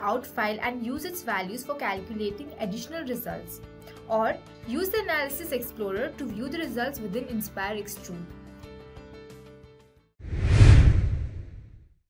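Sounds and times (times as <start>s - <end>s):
deep noisy whoosh: 10.2s - 11.9s.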